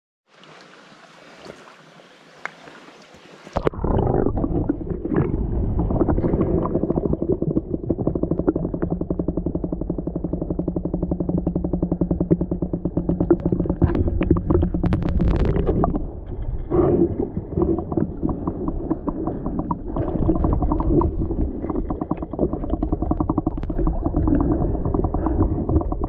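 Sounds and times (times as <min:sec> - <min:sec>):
low underwater rumble: 0:03.6 - 0:26.0
fast ticking buzz: 0:06.8 - 0:15.6.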